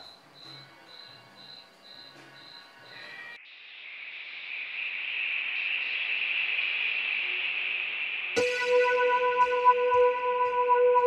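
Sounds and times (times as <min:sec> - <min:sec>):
hissing synthesized noise swell: 0:03.4 - 0:10.1.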